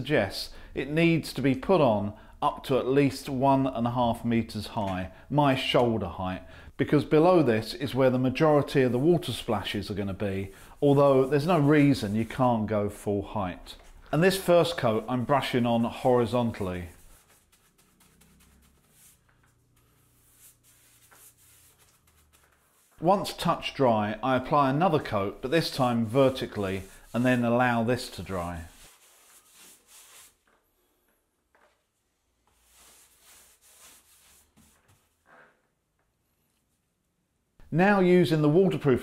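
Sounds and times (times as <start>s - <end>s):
paintbrush strokes on wall: 8.0s - 31.0s, 31.9s - 35.5s.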